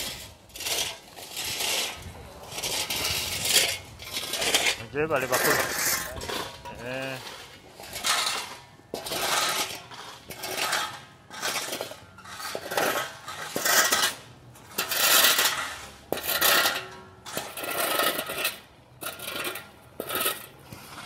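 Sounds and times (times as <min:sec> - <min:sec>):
asphalt chippings scattering: 0:00.0 - 0:21.0
shovel scraping road surface: 0:00.0 - 0:21.0.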